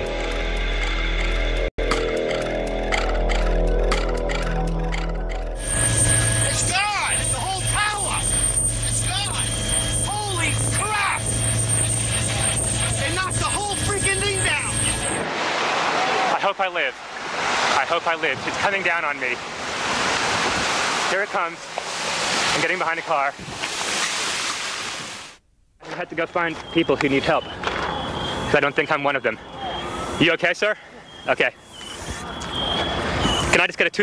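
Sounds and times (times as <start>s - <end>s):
held music tones: 0.0s - 15.3s
low hum: 0.0s - 16.3s
thin high whine: 0.0s - 16.6s
loud rushing wind noise: 5.6s - 16.2s, 19.5s - 21.1s.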